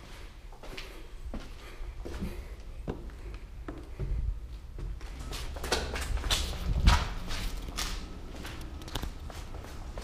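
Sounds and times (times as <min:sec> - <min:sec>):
footsteps walking: 0:00.0 - 0:10.0.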